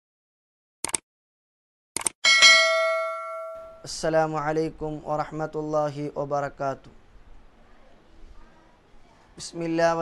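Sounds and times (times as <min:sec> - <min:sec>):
short clicks: 0:00.8 - 0:01.0
bell chime ringing: 0:02.2 - 0:03.9.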